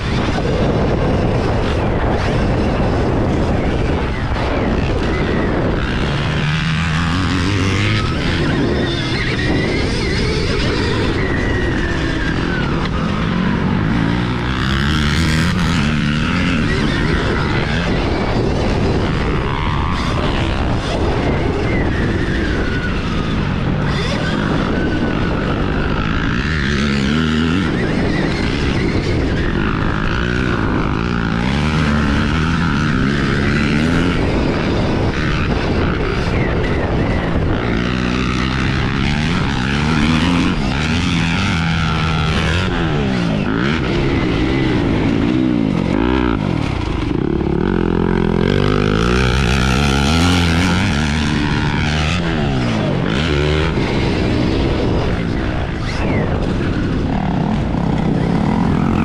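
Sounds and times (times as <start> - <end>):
dirt bike engine revving: 0.0 - 59.0
wind noise: 0.0 - 59.0.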